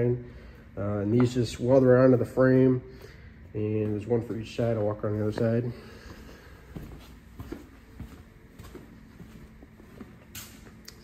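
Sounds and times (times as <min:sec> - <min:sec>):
footsteps on concrete floor: 0:00.0 - 0:11.0
low steady hum: 0:00.0 - 0:11.0.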